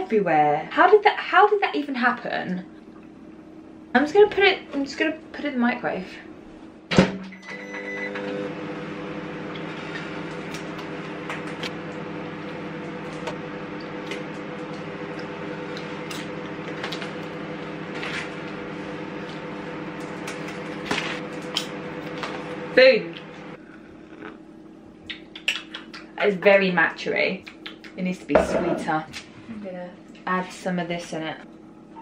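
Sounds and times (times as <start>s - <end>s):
microwave oven humming: 0.0s - 32.0s
microwave short beep: 7.2s - 8.5s.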